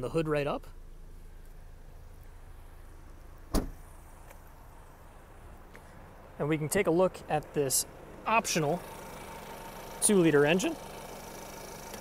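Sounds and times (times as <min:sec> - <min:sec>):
car door shutting: 0:03.5 - 0:04.4.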